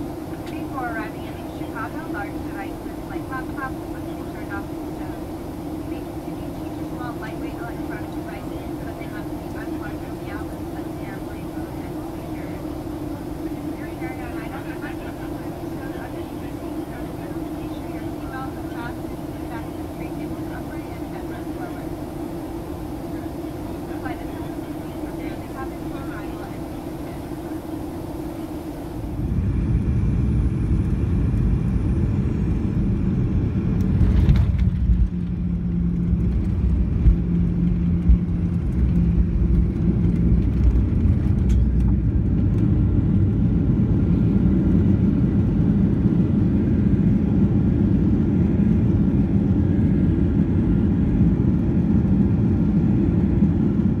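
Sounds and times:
low steady tone: 0:00.0 - 0:32.6
jet cabin hum and hiss: 0:00.0 - 0:54.0
jet rolling on runway rumble: 0:00.0 - 0:54.0.

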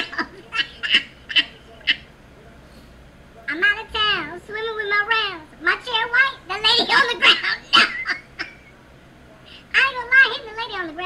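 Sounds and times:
man's stifled laughter: 0:06.8 - 0:08.8.

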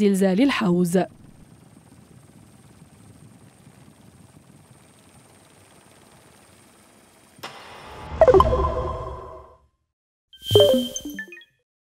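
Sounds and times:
sound effect: 0:07.4 - 0:09.6, 0:10.4 - 0:11.6
outro jingle: 0:08.2 - 0:09.5.

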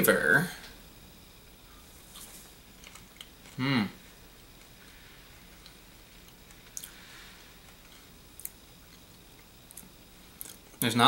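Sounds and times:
faint chewing: 0:02.0 - 0:10.9.

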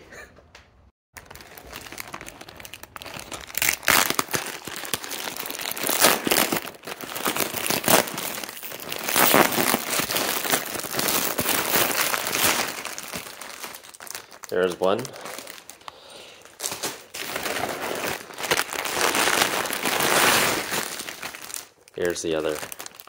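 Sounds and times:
plastic packaging crinkling: 0:01.2 - 0:23.0.

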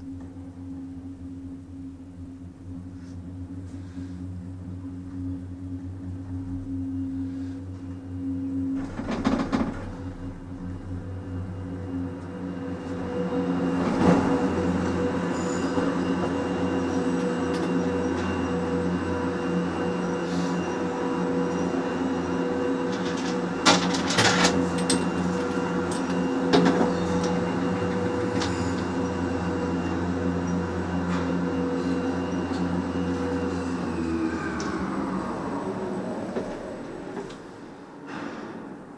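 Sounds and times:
lift machinery hum: 0:00.0 - 0:38.9.

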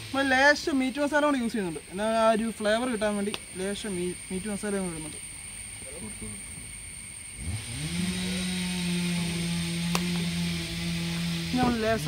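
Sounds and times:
small engine running: 0:00.0 - 0:12.0.

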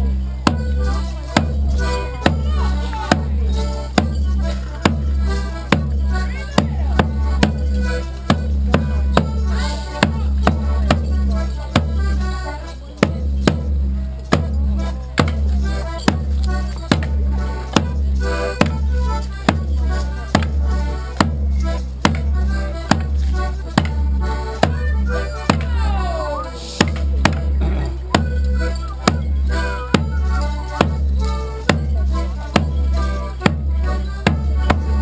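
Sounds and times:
folk tune: 0:00.0 - 0:35.0
booming drum beat: 0:00.4 - 0:12.1, 0:13.0 - 0:26.2, 0:26.8 - 0:35.0.

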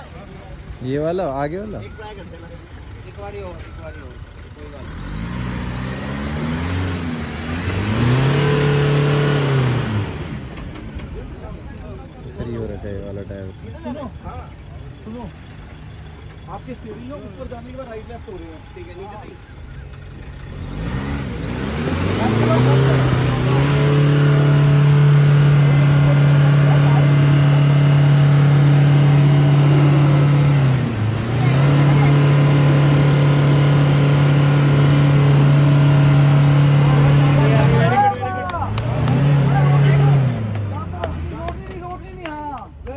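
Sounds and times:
pickup engine revving: 0:04.6 - 0:11.7, 0:19.6 - 0:41.9.

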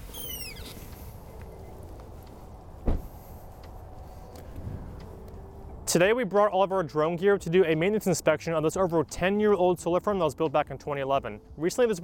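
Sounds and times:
low outdoor rumble: 0:00.0 - 0:11.6
car door slamming: 0:02.8 - 0:03.2.

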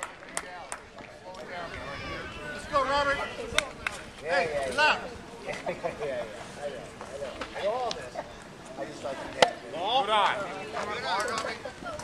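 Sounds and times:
voices calling out: 0:01.2 - 0:12.0.

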